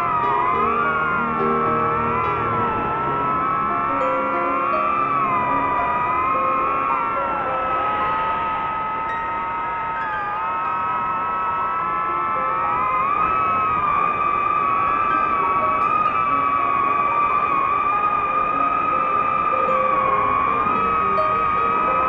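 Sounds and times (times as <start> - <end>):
drone motors whining: 0.0 - 22.0.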